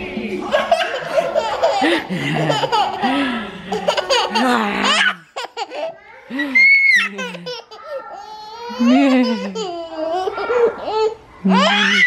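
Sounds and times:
toddler laughing: 0:00.5 - 0:12.0.

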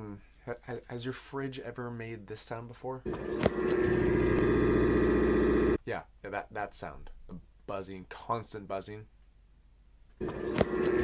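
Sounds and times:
refrigerator buzzing: 0:03.1 - 0:05.8, 0:10.2 - 0:11.0.

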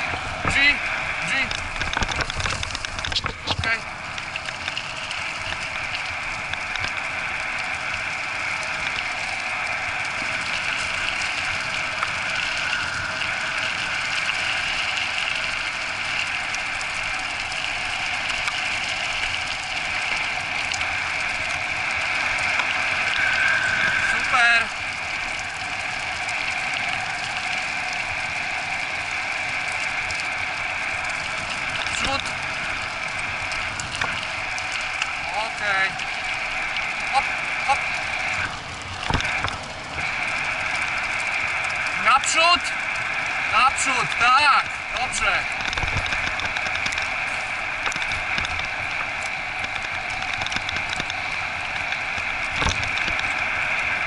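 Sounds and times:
cart wheels rolling on gravel: 0:45.0 - 0:53.6.

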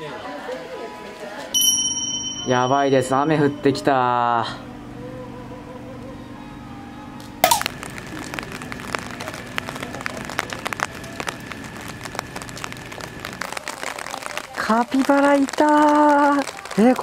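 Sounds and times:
rain falling: 0:07.4 - 0:17.0.

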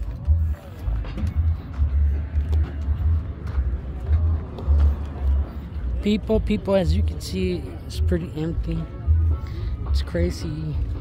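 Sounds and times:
open-air background noise: 0:00.0 - 0:11.0.

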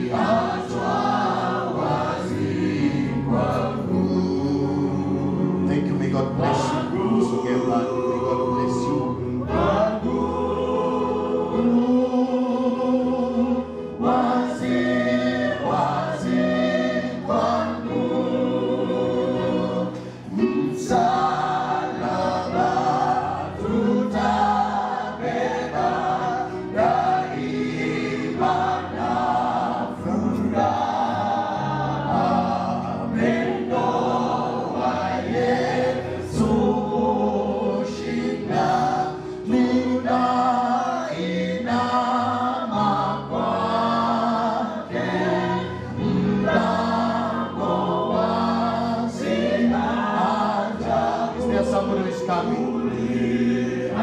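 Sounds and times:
congregation singing a gospel song: 0:00.0 - 0:54.0.

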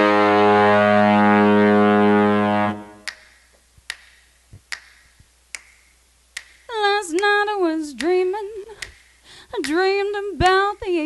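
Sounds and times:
held brass chord: 0:00.0 - 0:03.1
finger snaps: 0:03.0 - 0:07.3, 0:08.0 - 0:09.8.

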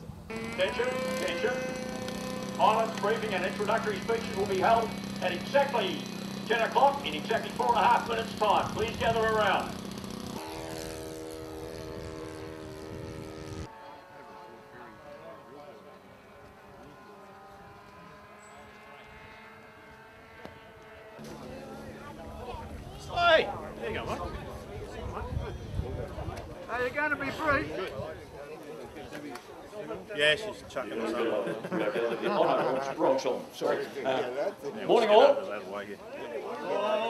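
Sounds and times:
steady hum: 0:00.0 - 0:14.8
model aircraft engine drone: 0:00.0 - 0:26.4
indistinct voices talking: 0:00.3 - 0:10.0.

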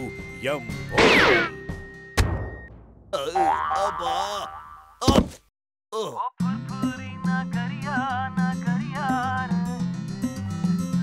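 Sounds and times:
cartoon boing: 0:03.4 - 0:04.9.

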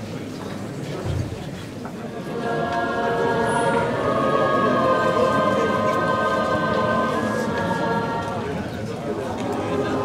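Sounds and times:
choir singing sacred music: 0:02.1 - 0:10.0.

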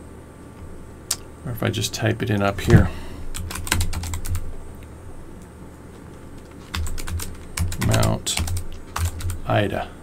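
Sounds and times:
computer keyboard typing: 0:03.3 - 0:04.4, 0:06.4 - 0:09.5.

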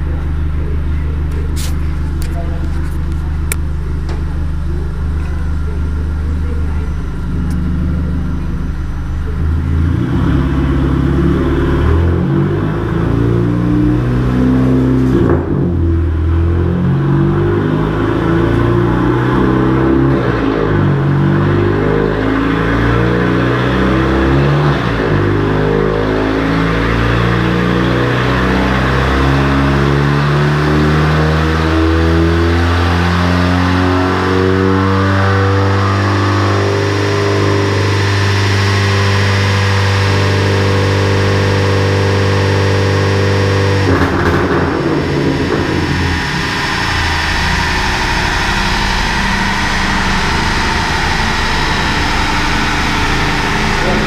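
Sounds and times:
car engine at full throttle: 0:00.0 - 0:54.0.

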